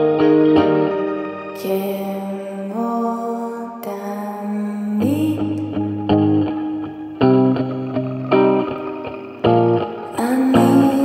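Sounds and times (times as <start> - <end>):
woman singing indie song: 1.5 - 6.5, 10.0 - 11.0.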